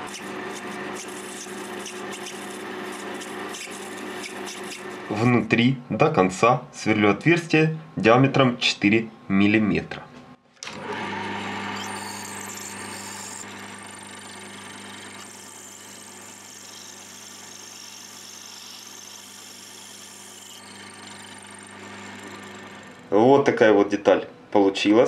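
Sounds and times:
drill cutting hiss: 0:00.0 - 0:05.1, 0:11.7 - 0:23.0
metal lathe humming: 0:00.0 - 0:05.3, 0:10.6 - 0:23.2.

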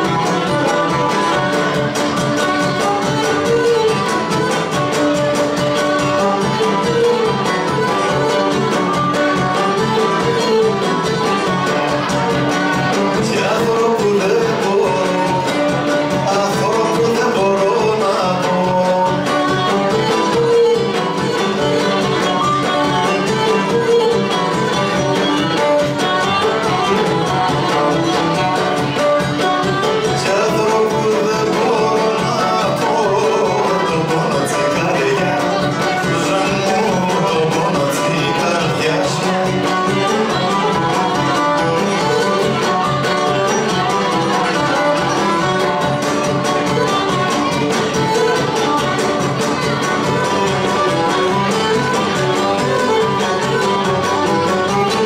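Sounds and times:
strummed lute: 0:00.0 - 0:55.0.

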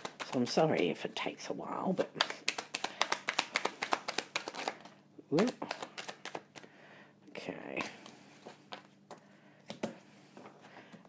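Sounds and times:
cards being shuffled: 0:00.0 - 0:01.0, 0:02.0 - 0:06.7, 0:07.8 - 0:10.5.

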